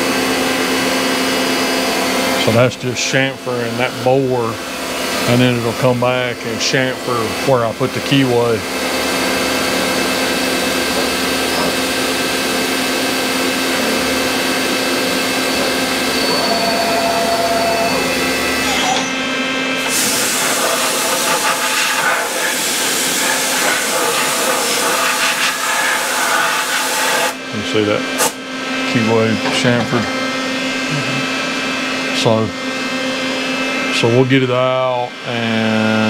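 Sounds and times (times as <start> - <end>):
milling machine hum and hiss: 0.0 - 34.3.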